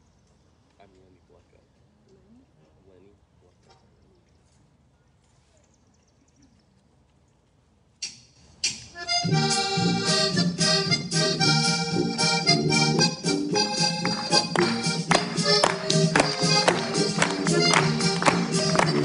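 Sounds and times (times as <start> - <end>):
backing track with steady beat: 8.0 - 19.0
button accordion polka: 8.6 - 19.0.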